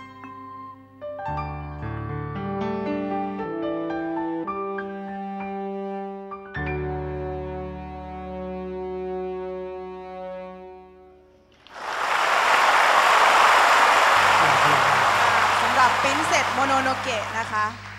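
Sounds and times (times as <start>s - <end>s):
audience applause: 11.7s - 17.9s.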